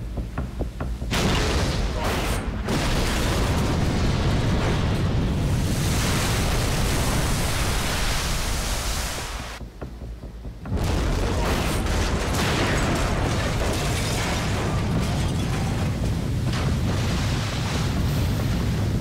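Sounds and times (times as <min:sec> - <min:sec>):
loud explosion blast: 0:01.1 - 0:07.5, 0:10.7 - 0:19.0.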